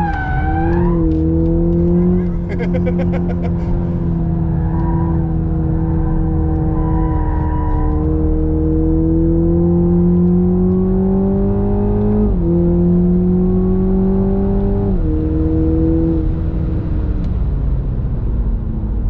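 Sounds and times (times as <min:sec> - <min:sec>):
tyre and road noise: 0:00.0 - 0:12.8
car engine pulling hard: 0:00.0 - 0:19.0.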